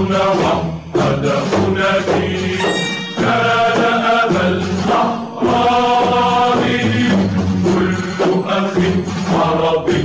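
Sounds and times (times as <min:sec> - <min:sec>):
choir singing long held notes: 0:00.0 - 0:10.0.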